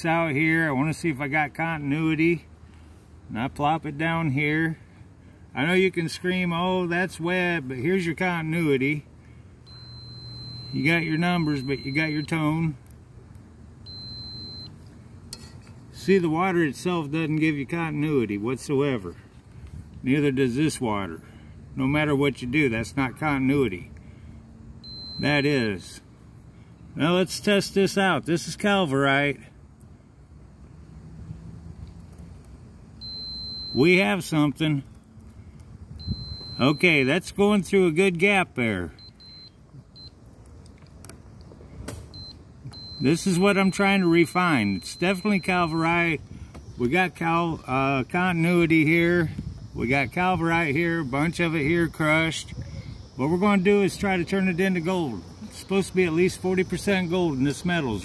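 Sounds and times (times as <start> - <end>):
multimeter high-pitched beep: 9.7 - 12.5, 13.9 - 14.7, 24.8 - 25.8, 33.0 - 34.0, 36.0 - 37.3, 39.0 - 40.2, 42.2 - 46.2.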